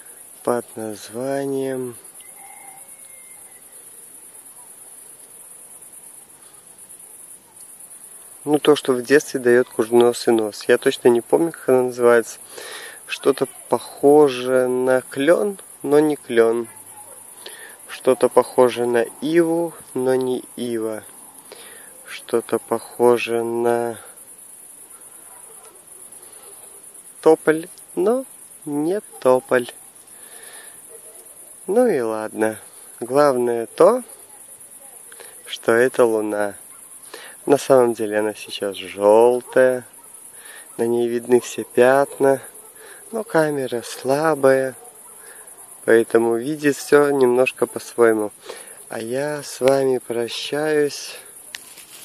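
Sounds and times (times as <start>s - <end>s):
crickets chirping: 0.0s - 52.0s.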